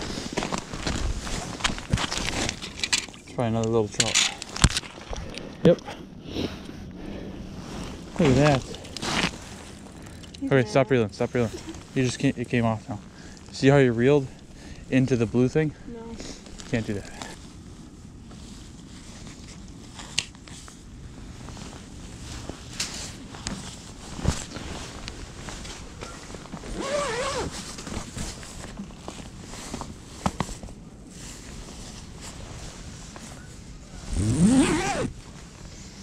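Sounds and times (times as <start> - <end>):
fabric scrapes: 26.6 - 28.4.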